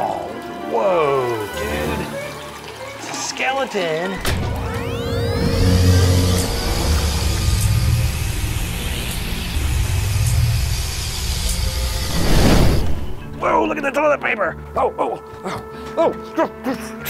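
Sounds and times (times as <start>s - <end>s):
loud electric hum: 4.2s - 13.4s
rising whine: 4.2s - 13.4s
whoosh: 4.2s - 13.4s
low rumble: 4.2s - 13.5s.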